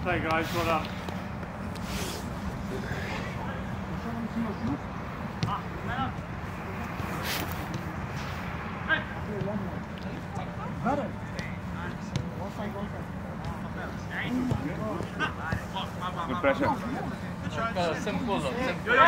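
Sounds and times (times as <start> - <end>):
players shouting and calling: 0.0 - 19.0.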